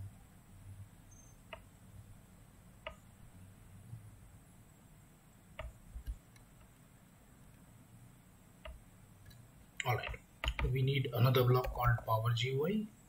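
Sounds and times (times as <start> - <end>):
faint low hum: 0.0 - 13.0
computer mouse clicking: 2.8 - 3.0, 5.6 - 6.7, 8.6 - 10.8.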